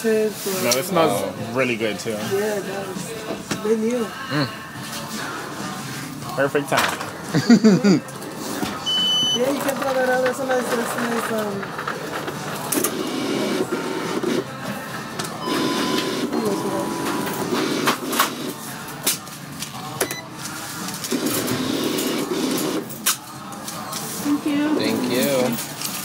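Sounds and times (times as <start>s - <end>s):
faint beep: 8.8s - 9.4s
machine whirring: 15.2s - 18.6s.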